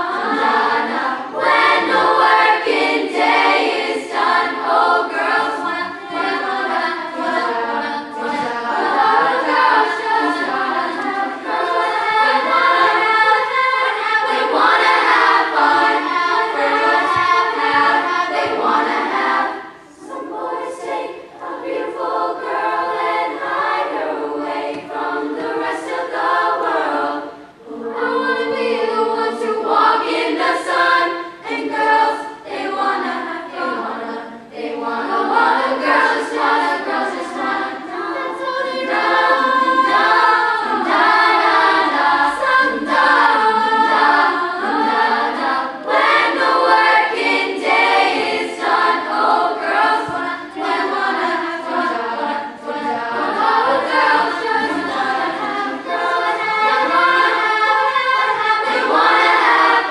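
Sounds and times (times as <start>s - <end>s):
girls' choir singing unaccompanied: 0.0s - 59.9s.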